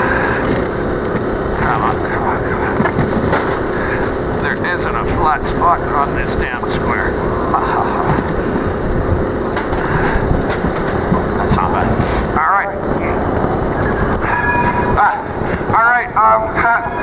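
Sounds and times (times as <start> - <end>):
outdoor city square noise: 0.0 - 17.0
wind on microphone: 0.0 - 17.0.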